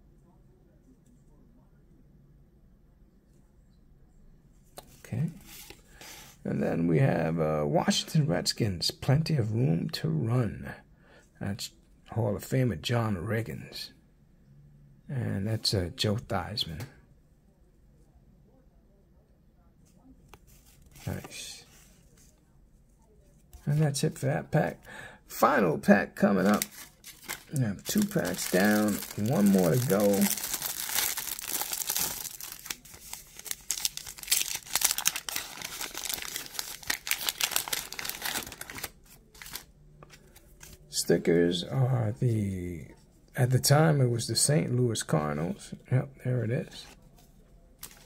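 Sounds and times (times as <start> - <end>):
cards rustling: 26.2 - 40.9, 46.8 - 48.0
wrapping crinkling and tearing: 26.3 - 40.8, 47.8 - 48.0.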